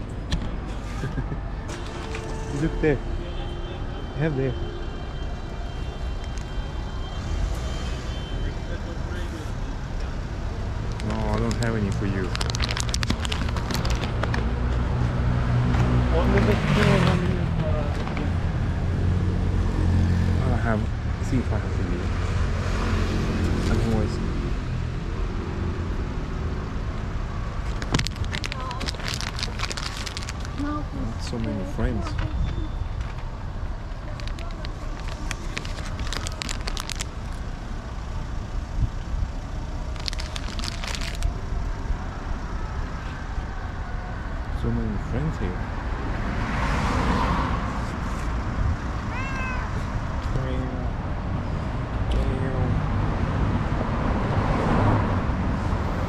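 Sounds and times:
city street traffic rumble: 0.0 - 56.0
crackling clicks: 10.9 - 14.5, 27.7 - 30.6, 34.0 - 37.4, 39.9 - 41.3.

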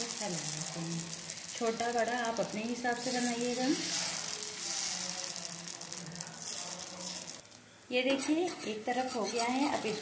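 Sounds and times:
batter sizzling on hot griddle: 0.0 - 10.0.

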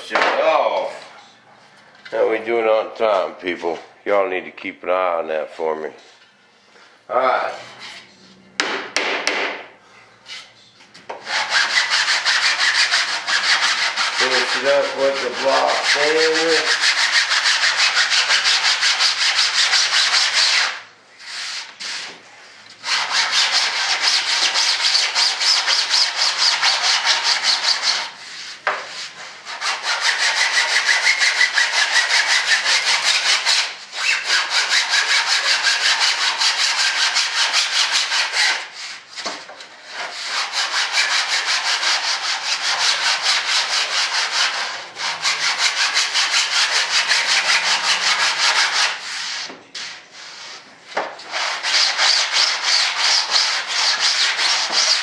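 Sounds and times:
sanding block rasping on wood: 11.2 - 22.1, 22.8 - 39.0, 39.8 - 50.6, 51.3 - 55.0.

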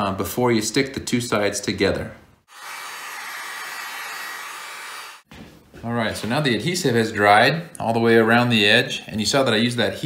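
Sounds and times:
heat gun blowing: 2.5 - 5.3.

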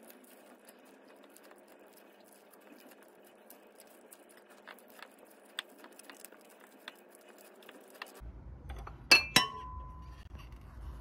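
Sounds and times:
glass dish clinking on bowl: 8.7 - 10.0.

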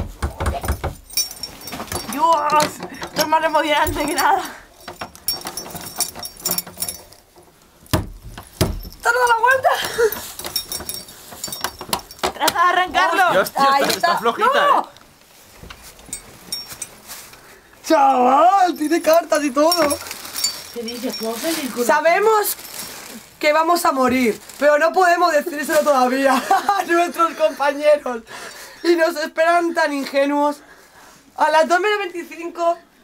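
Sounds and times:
items handled in wooden trunk: 0.0 - 24.7
person speaking: 0.2 - 7.1, 8.9 - 15.0, 17.8 - 30.6
light metallic rattle: 0.5 - 14.4, 15.7 - 17.5
knocks on wooden chest: 7.9 - 8.9.

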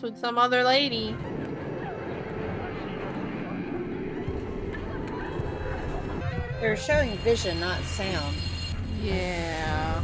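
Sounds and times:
deep rumble: 0.8 - 10.0.

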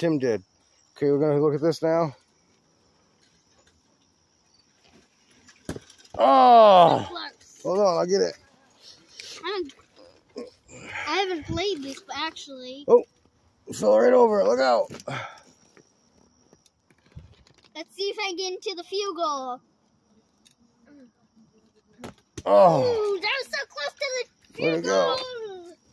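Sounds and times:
crickets chirring: 0.0 - 25.9.

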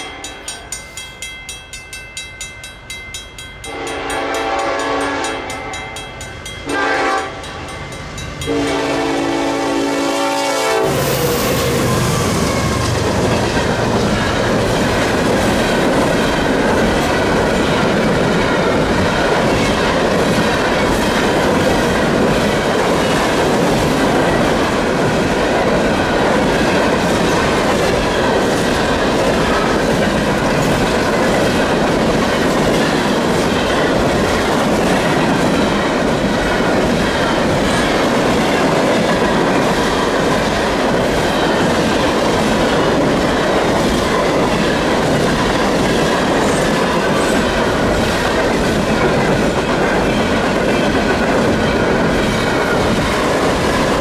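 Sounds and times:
freight train wheels on rail: 0.0 - 54.0.

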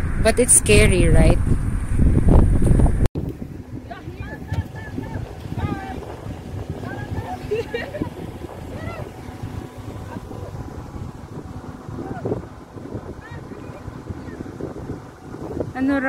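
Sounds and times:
wind on microphone: 0.0 - 16.0
faint voices: 3.7 - 11.0, 11.8 - 16.0.

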